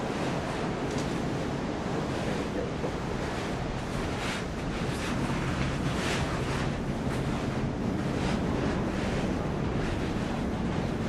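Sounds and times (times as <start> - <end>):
surf rushing: 0.0 - 11.0
wind: 0.0 - 11.0.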